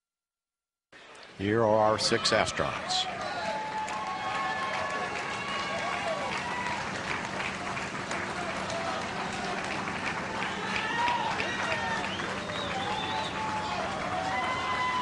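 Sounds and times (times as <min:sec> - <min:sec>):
people clapping: 0:01.0 - 0:15.0
crowd cheering and calling out: 0:01.1 - 0:15.0.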